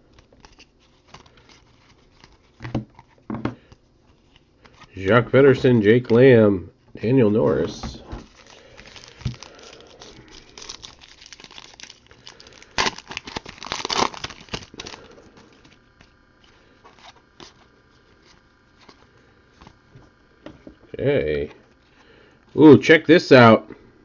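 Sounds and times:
wrapper crinkling and tearing: 8.2 - 17.6.

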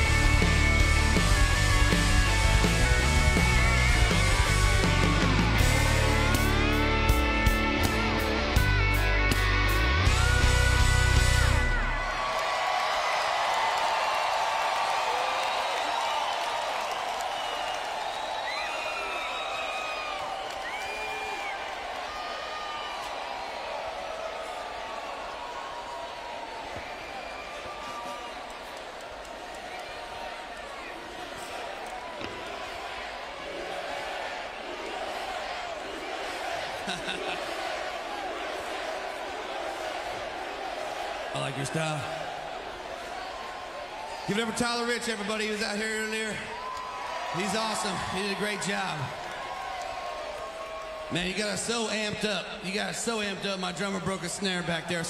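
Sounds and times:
crowd cheering and screaming: 0.0 - 55.0.

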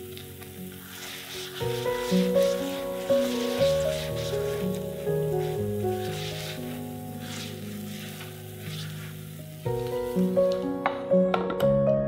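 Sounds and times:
food sizzling in oil: 0.0 - 10.8
background music: 0.0 - 12.0.

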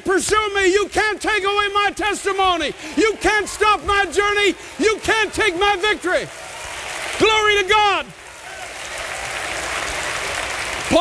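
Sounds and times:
preacher speaking: 0.0 - 6.3, 7.2 - 8.2
congregation applauding: 0.4 - 11.0.

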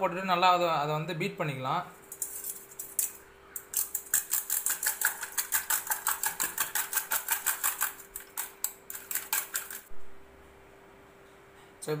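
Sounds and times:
whisk clicking against metal bowl: 3.7 - 9.9.

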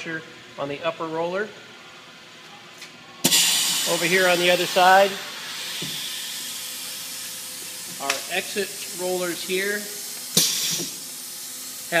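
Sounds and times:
compressed air hiss: 3.2 - 12.0.

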